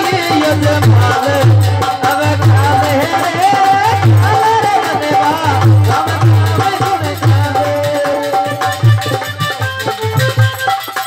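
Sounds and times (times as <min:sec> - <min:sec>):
man singing: 0:00.0 - 0:10.4
hand drum beat: 0:00.0 - 0:11.0
harmonium chords: 0:00.0 - 0:11.0.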